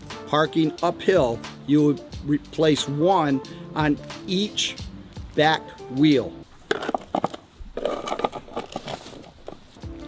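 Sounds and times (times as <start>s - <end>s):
handling noise: 6.5s - 9.8s
plastic chock scraping on asphalt: 6.7s - 9.6s.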